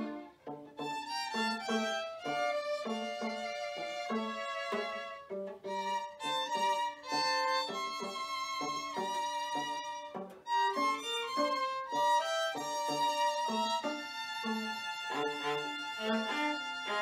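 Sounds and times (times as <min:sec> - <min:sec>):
bowed violins playing: 0:00.0 - 0:17.0.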